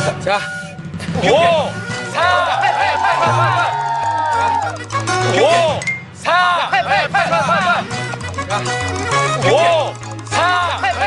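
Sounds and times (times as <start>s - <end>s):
background music: 0.0s - 11.0s
men shouting a countdown: 0.0s - 11.0s.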